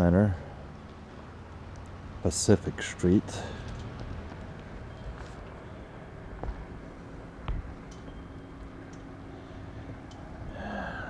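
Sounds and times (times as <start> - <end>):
steady low street rumble: 0.0 - 11.0
faint clicks: 10.0 - 10.3.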